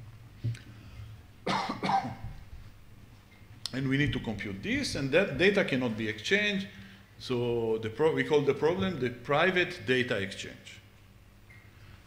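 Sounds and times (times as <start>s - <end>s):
man coughing: 1.5s - 2.3s.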